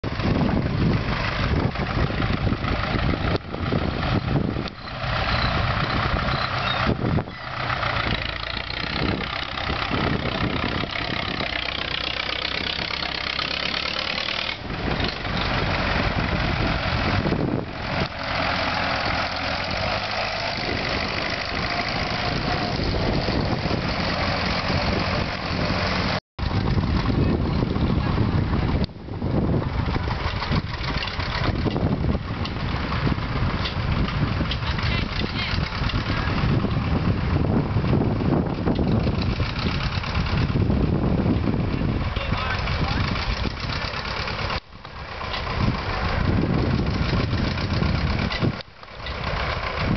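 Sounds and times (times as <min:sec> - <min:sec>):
tractor engine driving past: 0:00.0 - 0:49.9.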